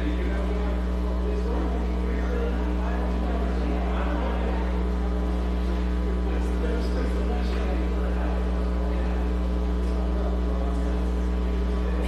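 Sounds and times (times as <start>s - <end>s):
faint indistinct voices: 0.0s - 12.0s
steady low hum: 0.0s - 12.0s.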